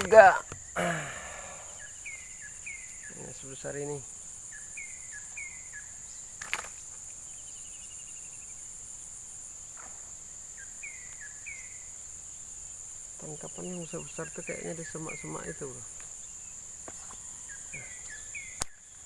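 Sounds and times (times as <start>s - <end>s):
insects buzzing: 0.0s - 19.0s
bird chirping and trilling: 0.1s - 8.6s, 13.2s - 19.0s.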